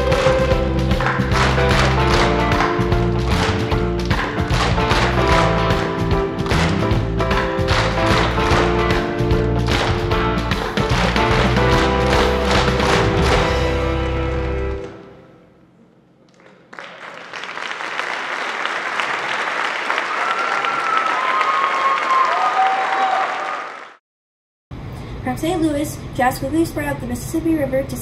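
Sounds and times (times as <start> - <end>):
jazz accompaniment: 0.0 - 15.1.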